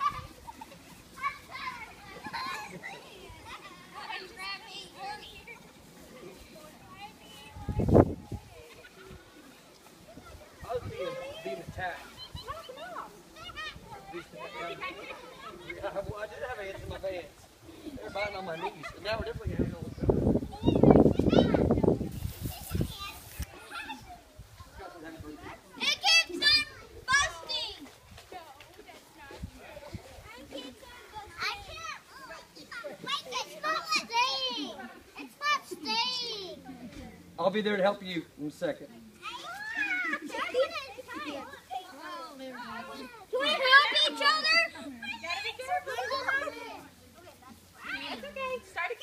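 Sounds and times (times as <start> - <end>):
distant children chattering and calling: 0.0 - 49.0.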